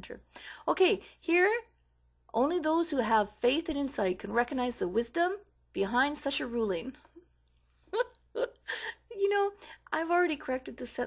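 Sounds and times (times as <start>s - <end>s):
person laughing: 7.9s - 9.2s.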